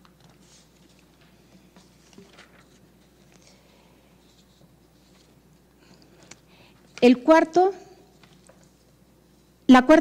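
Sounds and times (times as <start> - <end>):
low room hum: 0.0 - 10.0
paper sheets rustling: 0.2 - 3.6.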